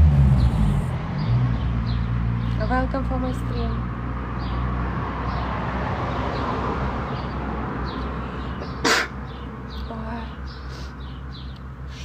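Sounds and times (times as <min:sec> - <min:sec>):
small birds chirping: 0:00.3 - 0:05.6, 0:06.3 - 0:12.0.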